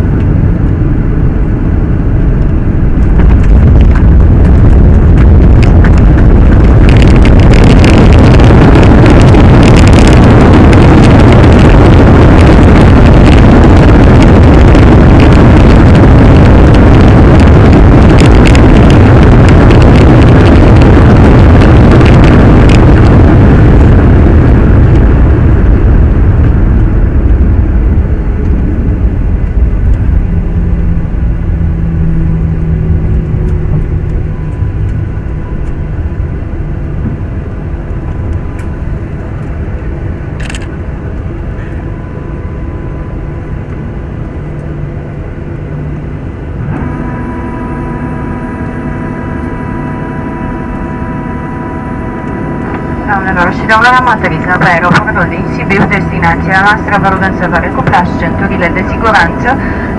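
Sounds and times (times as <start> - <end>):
jet engine rumble: 0.0 - 59.9
steady multi-pitched hum: 0.0 - 59.9.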